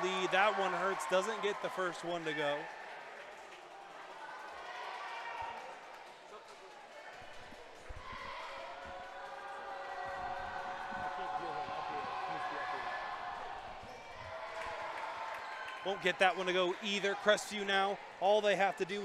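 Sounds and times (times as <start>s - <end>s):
crowd voices: 0.0s - 19.0s.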